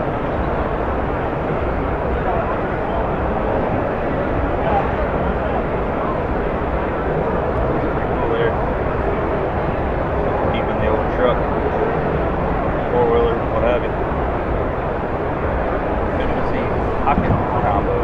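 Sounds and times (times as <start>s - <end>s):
crowd chatter: 0.0s - 18.0s
background rumble: 0.1s - 18.0s.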